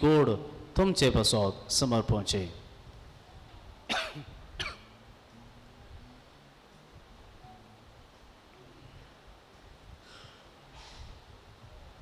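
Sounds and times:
person coughing: 3.9s - 4.9s.

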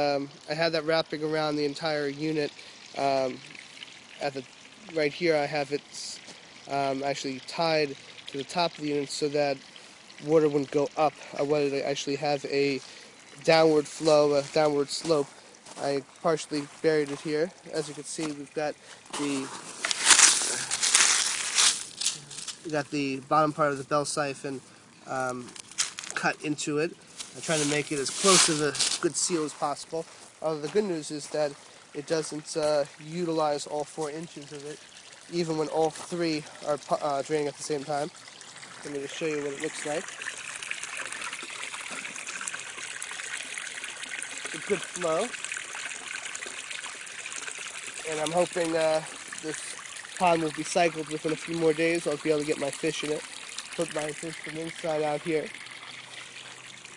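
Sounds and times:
water trickling into a pond: 0.0s - 56.9s
gravel scraped by hand: 19.1s - 22.7s, 27.2s - 29.6s.

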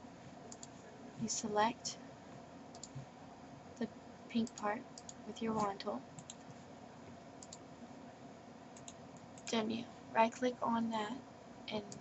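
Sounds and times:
computer mouse clicks: 0.5s - 0.8s, 2.7s - 3.0s, 4.4s - 6.6s, 7.4s - 7.6s, 8.8s - 9.6s.

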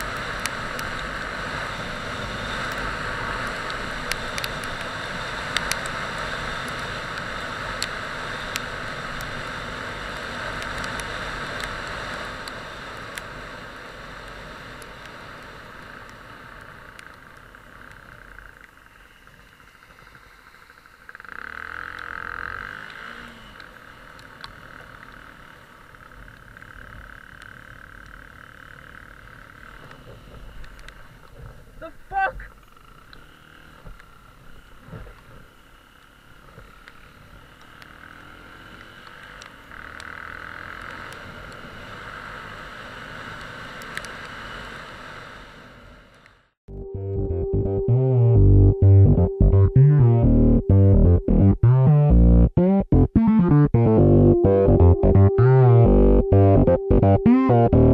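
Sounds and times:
tyre noise on wet road: 0.0s - 31.8s
motorcycle engine: 20.7s - 30.5s.

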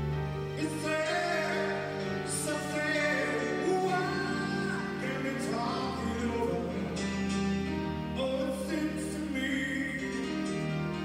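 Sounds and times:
piano accompaniment: 0.0s - 11.0s
man singing a slow ballad: 0.6s - 11.0s.

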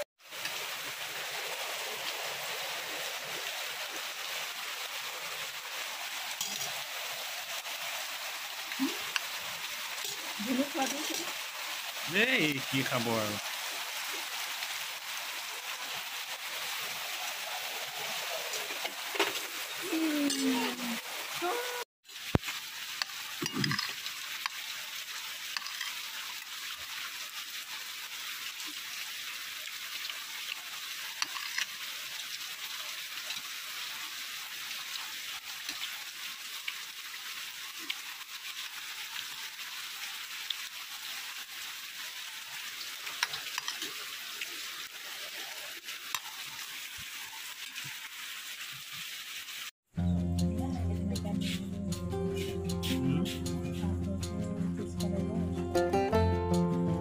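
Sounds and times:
rain falling: 0.0s - 50.6s, 51.4s - 57.0s
spoons clinking on plates: 23.4s - 24.0s.

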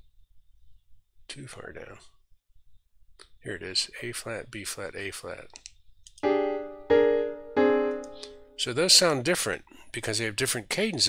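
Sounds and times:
piano melody: 6.2s - 8.6s.

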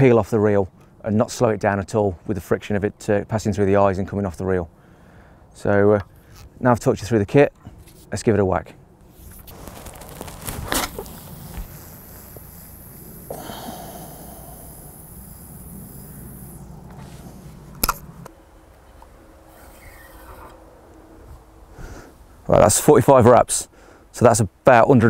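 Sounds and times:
low wind rumble: 8.7s - 24.6s
fishing line hissing off reel: 10.7s - 17.5s, 19.4s - 20.6s.

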